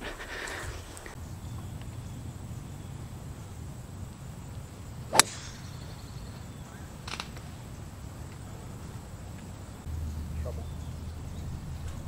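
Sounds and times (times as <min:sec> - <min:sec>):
golf club striking ball: 0:05.1 - 0:06.1.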